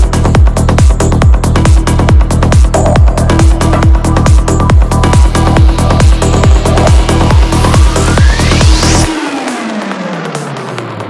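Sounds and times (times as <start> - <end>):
hi-hat ticking: 0.0 - 9.6
psytrance music: 0.0 - 11.0
rising sweep: 1.7 - 11.0
synth tone sliding down: 3.0 - 11.0.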